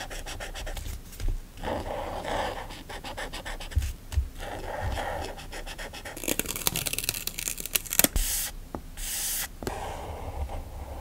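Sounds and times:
marker scratching on paper: 0.0s - 0.9s, 1.6s - 6.4s
plastic sticker sheet rustling: 6.2s - 8.2s.

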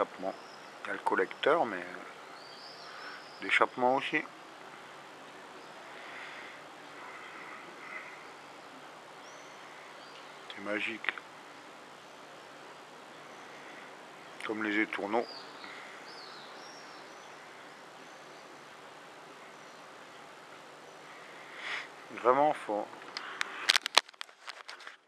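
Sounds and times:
outdoor ambient hiss: 0.0s - 25.0s.

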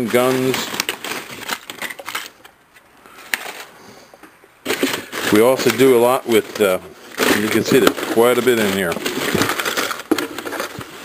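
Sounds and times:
plastic packs rustling: 0.0s - 11.0s.

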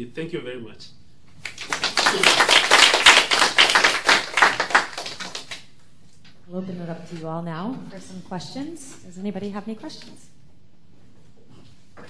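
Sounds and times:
audience applauding: 1.4s - 5.7s.

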